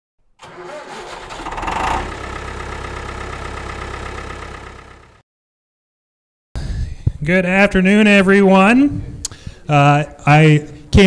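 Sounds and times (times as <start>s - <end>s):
engine starting and running: 0.4s - 5.2s.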